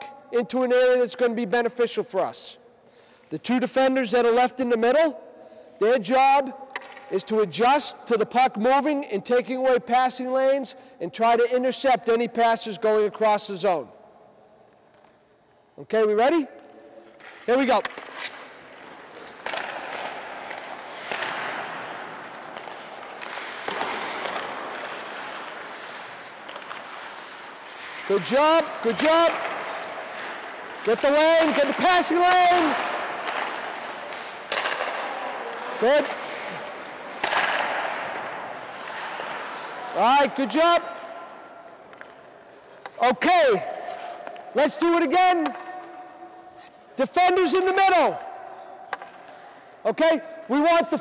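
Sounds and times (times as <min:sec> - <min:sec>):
skates scraping on ice: 0:14.4 - 0:51.0
sticks knocking puck: 0:16.2 - 0:46.8, 0:48.8 - 0:49.6.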